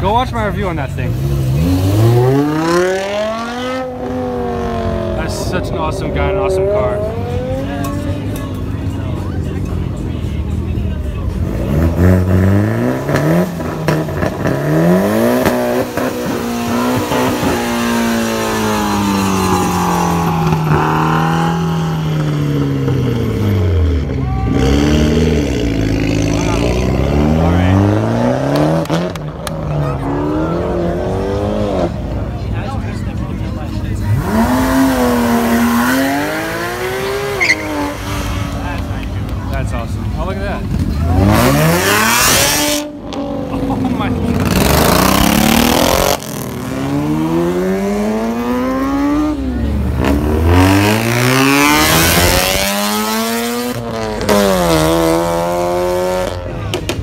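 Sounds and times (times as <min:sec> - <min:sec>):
cars accelerating: 0:00.0 - 0:57.0.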